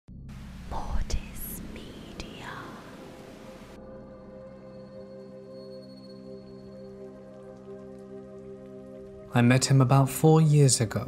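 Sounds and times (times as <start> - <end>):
low droning music: 0.1 - 11.0
static hiss: 0.3 - 3.8.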